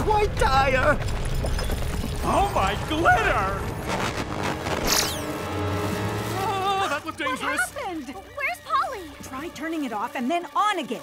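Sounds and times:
cartoon background music: 0:02.2 - 0:11.0.

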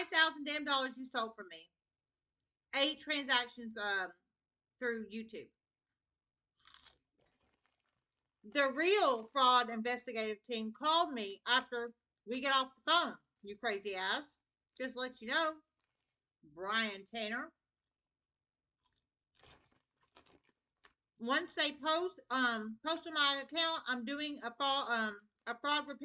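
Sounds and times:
person crunching snack: 0:06.6 - 0:08.2, 0:18.8 - 0:21.0.

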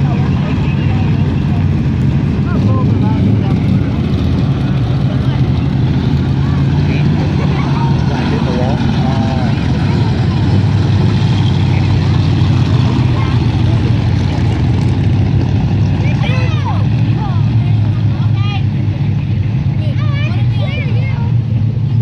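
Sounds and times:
race car engines droning: 0:00.0 - 0:22.0.

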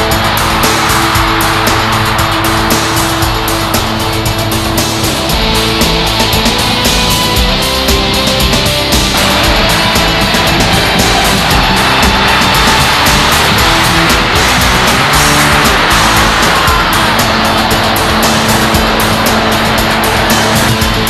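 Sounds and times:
hard rock music: 0:00.0 - 0:21.0.

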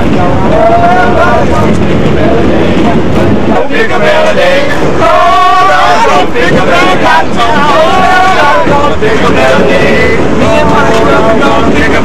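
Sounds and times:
subway train rumbling on rails: 0:00.0 - 0:12.0
voices: 0:00.0 - 0:12.0.

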